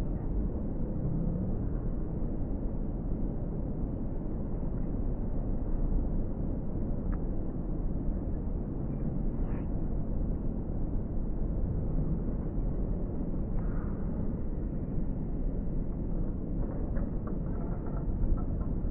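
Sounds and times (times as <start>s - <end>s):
low rumbling background noise: 0.0s - 18.9s.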